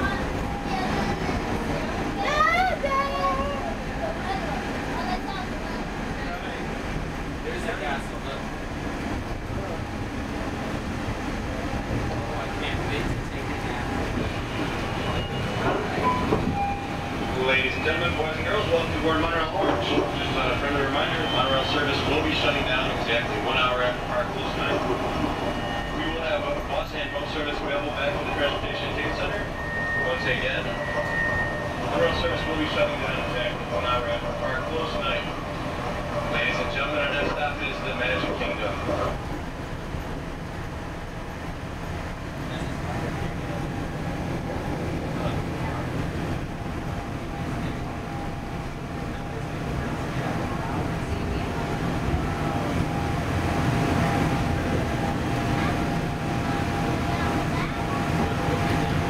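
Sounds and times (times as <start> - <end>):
indistinct voices: 0.0 - 59.0
monorail train rumbling on track: 0.0 - 59.0.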